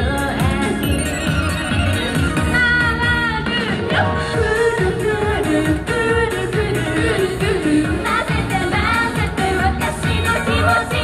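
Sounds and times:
women singing pop song: 0.0s - 1.2s, 2.4s - 11.0s.

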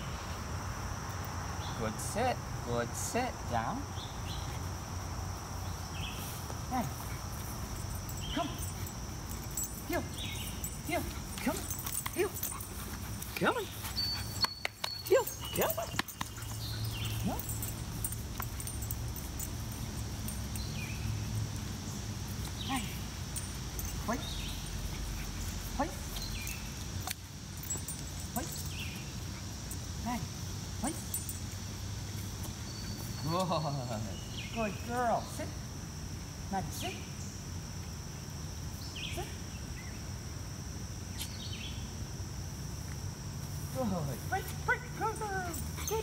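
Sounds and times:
insect drone: 0.0s - 46.0s
man calling to dog: 1.8s - 3.9s, 6.6s - 7.0s, 8.3s - 8.7s, 9.8s - 10.2s, 10.8s - 12.4s, 13.2s - 13.9s, 15.0s - 16.1s, 24.0s - 24.4s, 28.3s - 28.6s, 30.0s - 31.1s, 43.7s - 46.0s.

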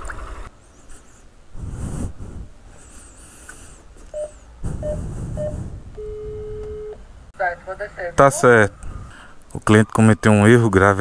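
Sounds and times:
intercom keypad beeps: 4.1s - 7.0s.

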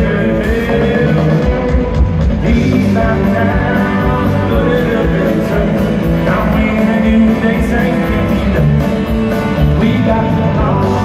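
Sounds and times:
drums: 0.0s - 11.0s
electric guitars: 0.0s - 11.0s.

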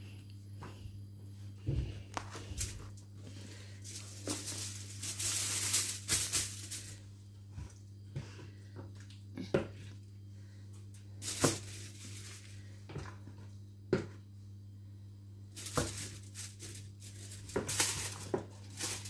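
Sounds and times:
steady low hum: 0.0s - 19.0s
aluminium foil crinkling: 2.1s - 7.1s, 10.9s - 12.7s, 15.5s - 19.0s.

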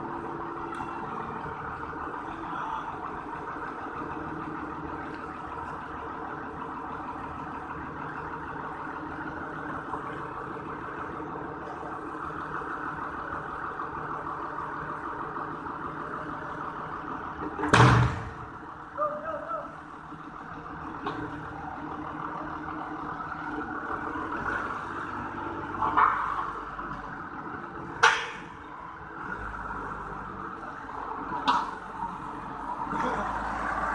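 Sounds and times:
forklift engine running: 0.0s - 33.9s.

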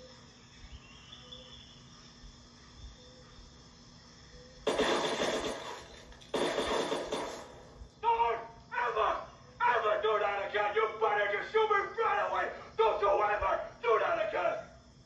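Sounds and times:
faint outdoor ambience: 0.0s - 15.0s
loud harsh bursts: 4.7s - 7.6s
voices: 8.0s - 14.8s.

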